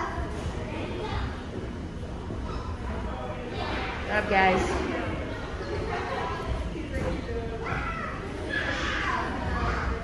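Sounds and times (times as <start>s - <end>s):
indistinct voices in a hall: 0.0s - 10.0s.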